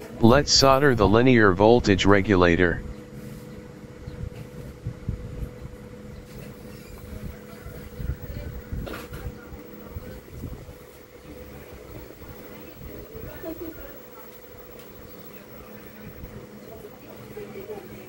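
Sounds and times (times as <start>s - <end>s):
steady low hum: 0.0s - 3.3s.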